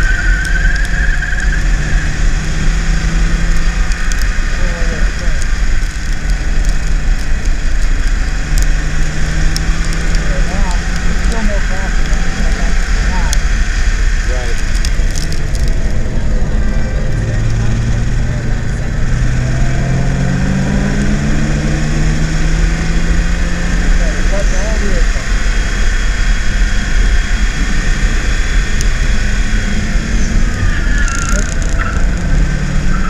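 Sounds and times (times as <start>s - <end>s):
car engine at part throttle: 0.0s - 33.0s
road and wind noise: 0.0s - 33.0s
faint crackling ticks: 3.5s - 4.4s, 5.1s - 8.8s, 9.4s - 13.4s, 14.5s - 16.0s, 30.2s - 32.4s.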